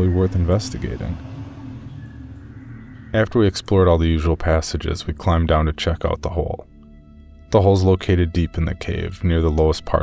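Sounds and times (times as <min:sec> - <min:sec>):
low ambient drone: 0:00.0 - 0:10.0.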